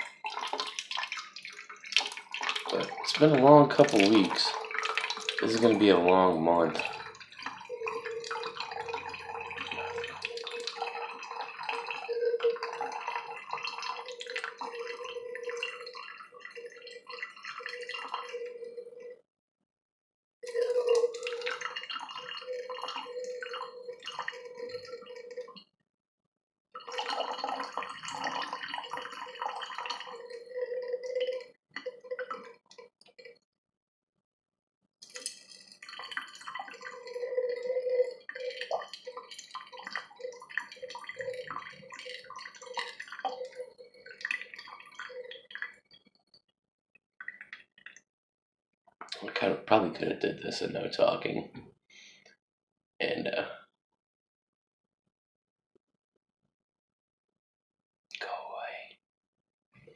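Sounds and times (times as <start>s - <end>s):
water trickling into metal can: 0.0s - 19.1s, 20.4s - 25.6s, 26.8s - 33.3s, 35.0s - 46.0s
can ringing note: 2.7s - 19.1s, 20.4s - 25.4s.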